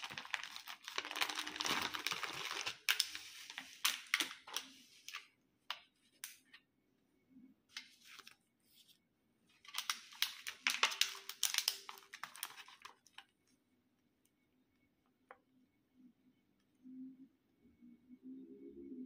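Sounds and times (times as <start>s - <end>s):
plastic wrapping crinkling: 0.0s - 5.3s, 9.5s - 13.3s.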